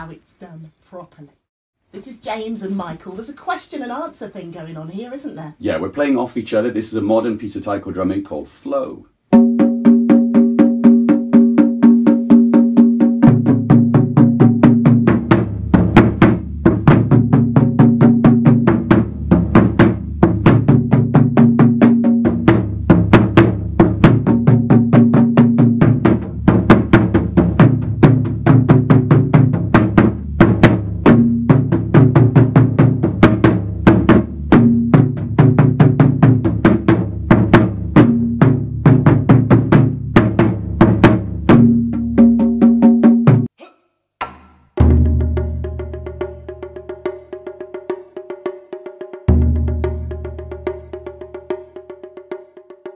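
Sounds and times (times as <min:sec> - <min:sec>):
deep drum beats: 0:09.3 - 0:43.5, 0:44.2 - 0:52.9
taiko drums fast rhythm: 0:09.3 - 0:43.5, 0:44.3 - 0:52.9.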